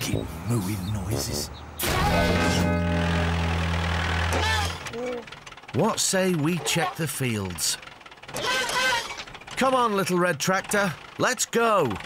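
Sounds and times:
cartoon vehicle engine idling: 0.0 - 12.0.

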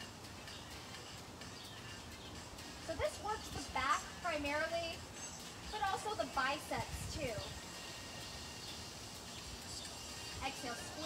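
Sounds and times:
high-pitched bird chirps: 3.1 - 11.0.

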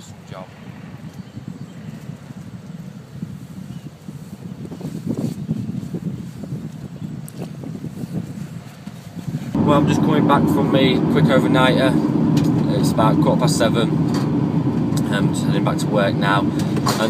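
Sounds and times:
wind buffeting microphone: 0.0 - 17.0.

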